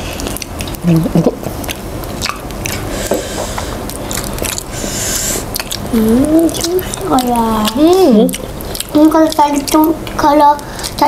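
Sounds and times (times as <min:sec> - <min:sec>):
wet chewing and biting: 0:00.0 - 0:11.0
mouth clicks and smacks: 0:00.2 - 0:11.0.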